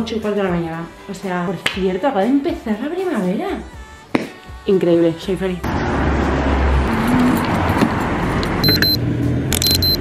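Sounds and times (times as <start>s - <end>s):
city street traffic: 5.6s - 10.0s
short high-pitched electronic beeps: 8.6s - 9.0s, 9.6s - 10.0s.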